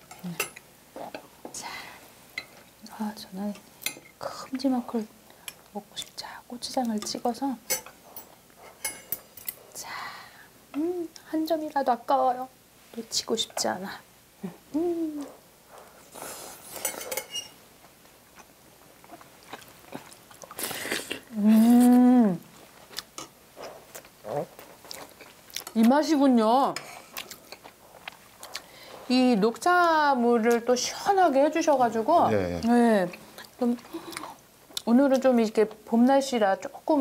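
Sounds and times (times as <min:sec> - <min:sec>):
person humming: 0:14.4 - 0:15.4, 0:21.3 - 0:22.4
person chewing: 0:18.3 - 0:22.0, 0:22.6 - 0:25.8, 0:26.9 - 0:28.8.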